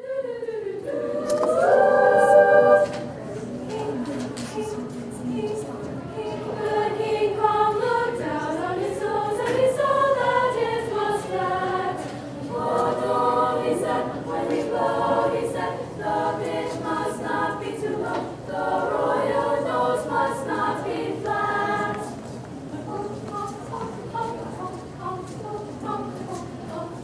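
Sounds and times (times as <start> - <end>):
women's choir singing: 0.0 - 27.0.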